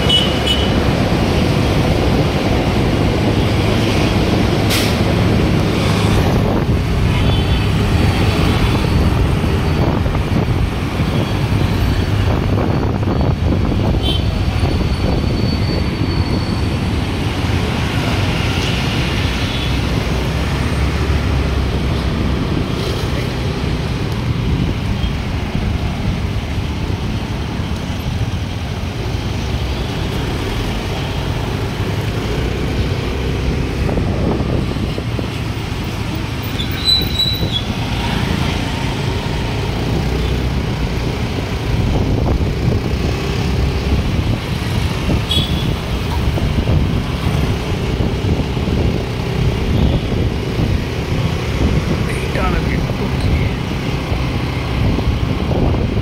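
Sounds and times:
vehicle engine and road rumble: 0.0s - 56.0s.

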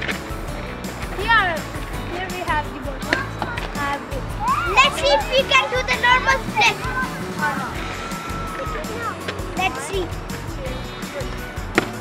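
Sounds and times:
music with a steady beat: 0.0s - 12.0s.

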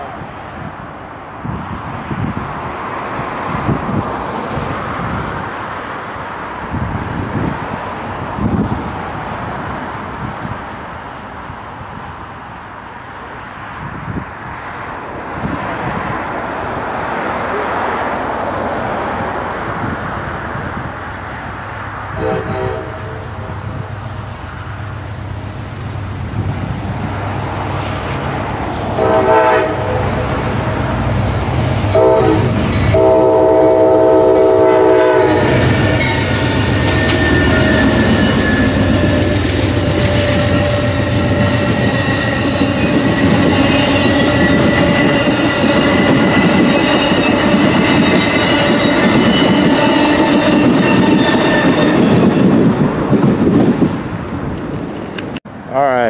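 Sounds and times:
train rolling past: 0.0s - 56.0s
train air horn blasts: 22.1s - 23.4s, 28.9s - 30.2s, 31.9s - 52.2s.

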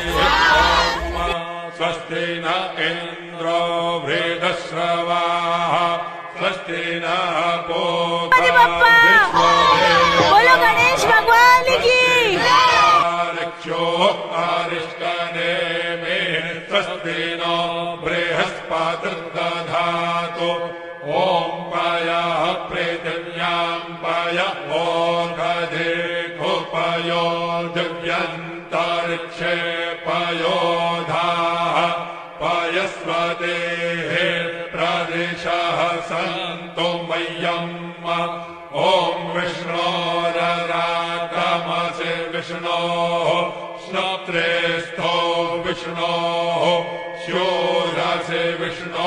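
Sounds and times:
person chanting mantras: 0.0s - 49.0s.

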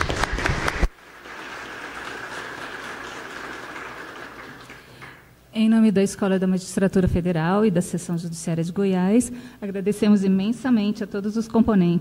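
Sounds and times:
audience applause in a hall: 0.0s - 5.3s.

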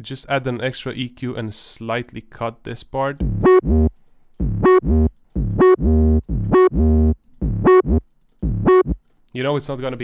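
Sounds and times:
sliding bass notes: 3.2s - 9.0s
bright keyboard tone: 3.3s - 9.0s.

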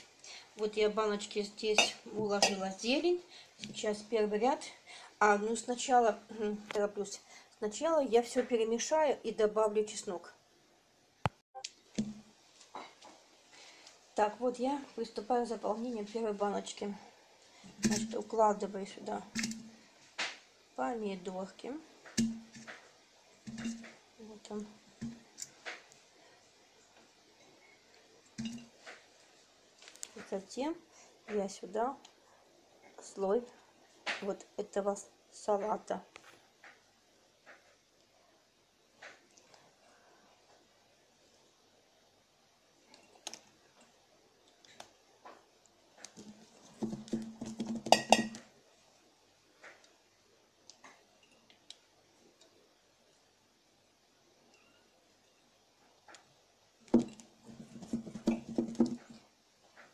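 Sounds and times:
tomatoes knocking against glass jar: 22.1s - 22.8s, 23.5s - 24.0s, 46.2s - 48.5s, 56.9s - 59.2s.

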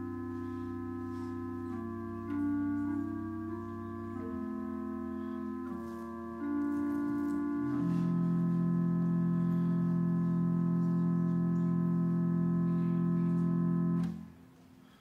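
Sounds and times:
organ playing sustained chords: 0.0s - 14.4s.

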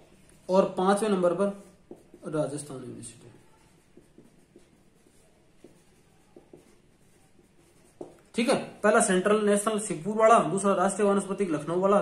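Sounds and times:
pen writing on paper: 1.5s - 2.8s, 3.4s - 8.4s.

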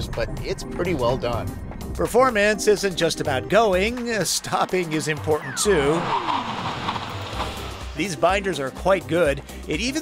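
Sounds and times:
background music with low beat: 0.0s - 10.0s
road and tyre noise: 3.6s - 8.2s
car engine note falling: 4.6s - 8.0s.

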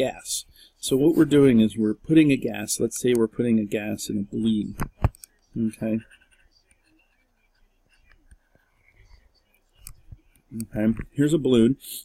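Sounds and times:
faint breathy sounds: 0.3s - 1.2s
soft clicks: 9.8s - 11.1s.

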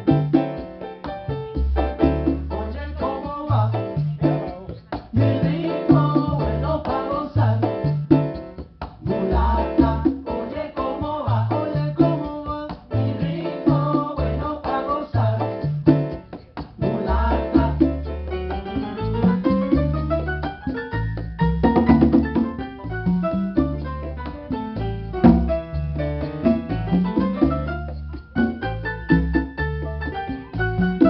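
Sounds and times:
repeating bass line: 0.0s - 0.6s, 1.6s - 12.3s, 12.9s - 31.0s
piano: 0.0s - 31.0s.

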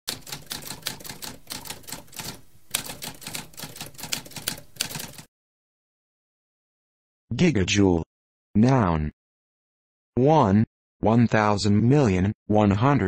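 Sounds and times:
manual typewriter typing: 0.1s - 5.3s.

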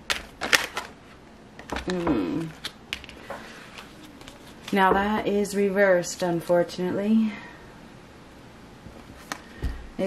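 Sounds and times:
cards being shuffled: 1.6s - 4.9s.

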